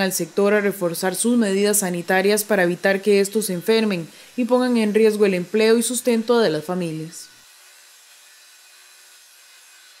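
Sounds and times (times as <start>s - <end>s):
circular saw cutting wood: 0.0s - 10.0s.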